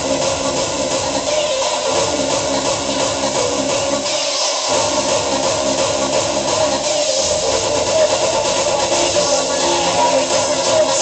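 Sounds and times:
hardcore dance music: 0.0s - 11.0s.

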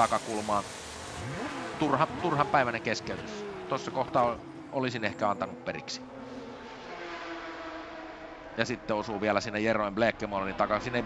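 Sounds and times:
hiss: 0.0s - 1.7s
race car engines running: 0.0s - 11.0s.

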